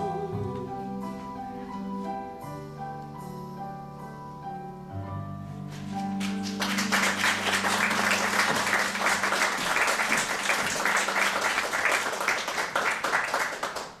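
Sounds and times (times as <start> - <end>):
audience applause: 6.0 - 14.0.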